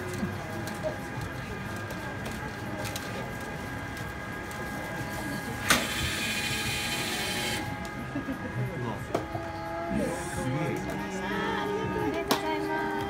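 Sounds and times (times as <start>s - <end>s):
printer carriage running: 0.1s - 8.7s.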